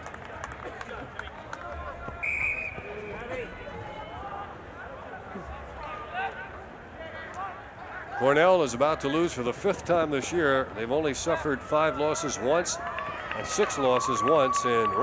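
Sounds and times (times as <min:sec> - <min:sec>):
distant shouts and voices: 0:00.7 - 0:15.0.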